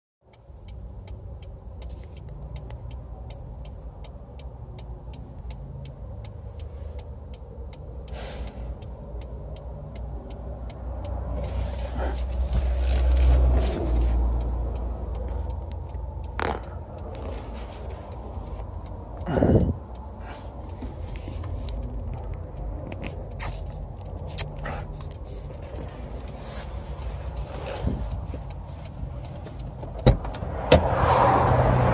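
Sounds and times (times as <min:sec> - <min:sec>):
car engine and road rumble: 0:00.2 - 0:31.9
fast regular ticking: 0:00.3 - 0:13.3, 0:14.0 - 0:17.3, 0:18.0 - 0:30.0
small clicks and scrapes: 0:01.8 - 0:03.0, 0:11.3 - 0:14.5, 0:15.2 - 0:18.9, 0:20.3 - 0:30.4.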